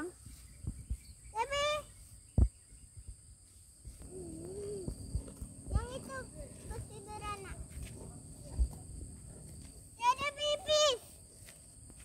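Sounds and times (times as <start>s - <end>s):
insect chirring: 0.0s - 12.0s
faint low wavering hum: 1.9s - 10.5s.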